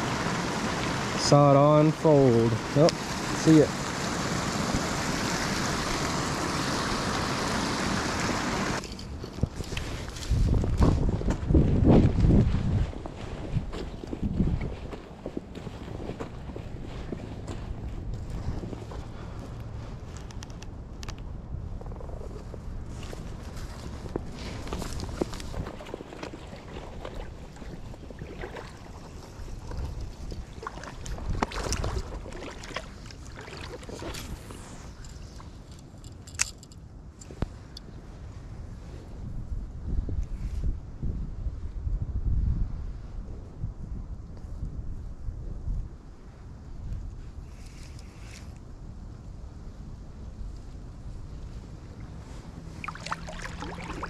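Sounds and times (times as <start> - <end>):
creek water rushing over rocks: 0.0 - 8.8, 52.7 - 54.0
wind buffeting microphone: 6.7 - 35.7, 37.3 - 54.0
footsteps on gravel: 9.4 - 20.3.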